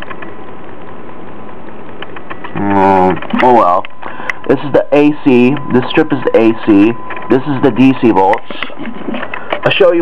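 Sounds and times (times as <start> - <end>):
faint steady tones: 0.0 - 10.0.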